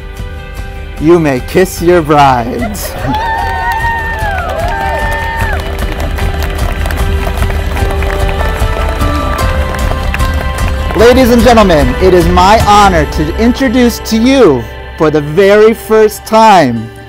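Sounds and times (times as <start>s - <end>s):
music with long held notes: 0.0s - 17.0s
guests whooping and cheering: 2.6s - 9.5s.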